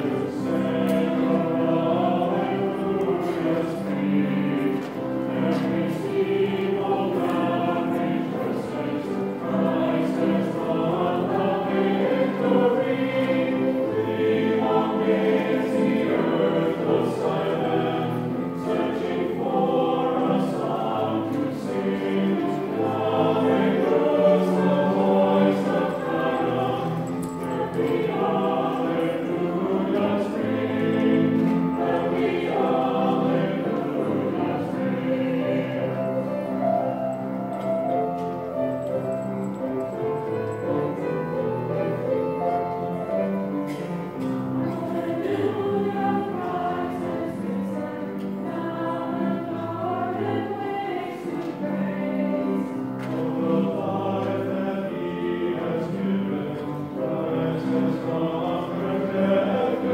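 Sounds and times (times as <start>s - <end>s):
mixed choir singing: 0.0s - 59.9s.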